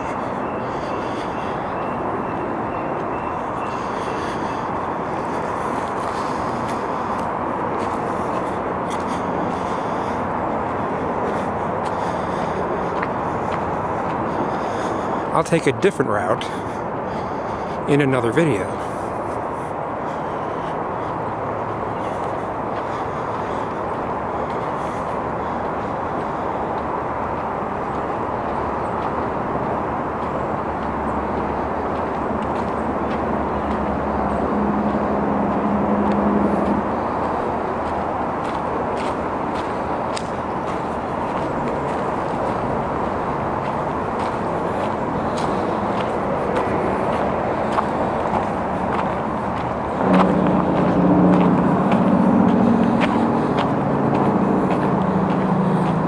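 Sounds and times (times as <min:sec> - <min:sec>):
distant road traffic: 0:00.0 - 0:56.0
low engine hum: 0:00.0 - 0:56.0.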